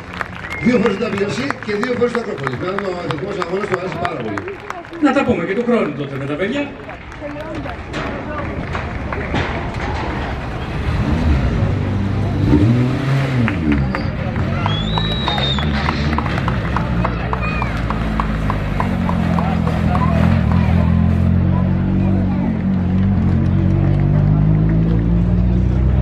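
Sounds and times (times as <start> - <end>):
crowd voices: 0.0 - 26.0
rally car engine revving: 8.7 - 26.0.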